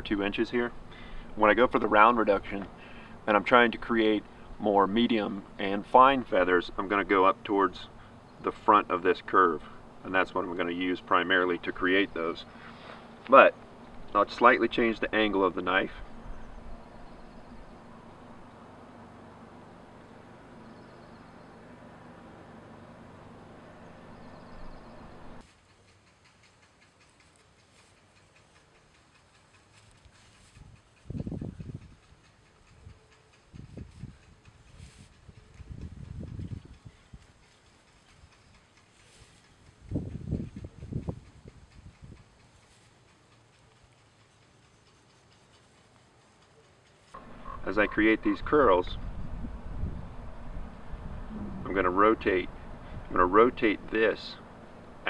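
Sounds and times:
steady background hum: 0.0s - 55.0s.

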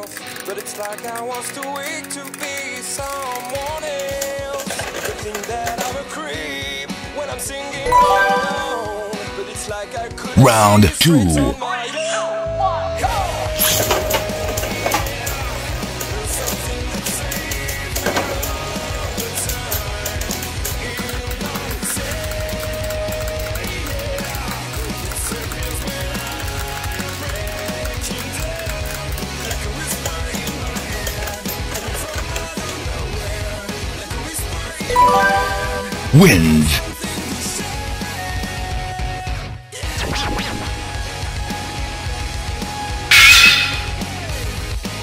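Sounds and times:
background music: 7.8s - 9.6s, 10.4s - 16.0s, 34.9s - 36.8s.

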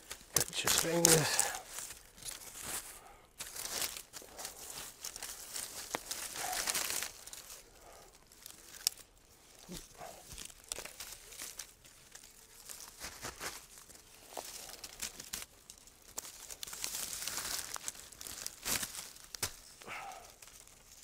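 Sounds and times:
dry reed rustling and crackling: 0.0s - 21.0s.

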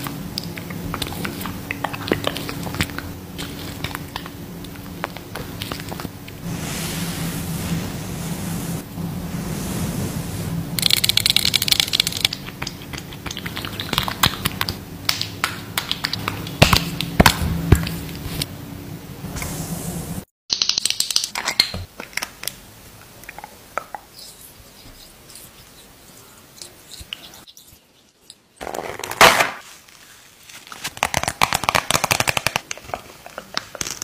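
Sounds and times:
low steady hum: 0.0s - 20.3s
long nails rubbing and tapping: 10.8s - 17.2s, 23.3s - 28.4s.

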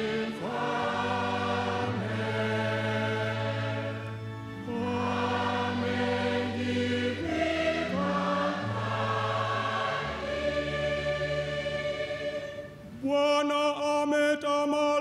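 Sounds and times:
electronic keyboard playing slow chords: 0.0s - 13.0s
choir-like sustained tone: 0.0s - 13.2s.

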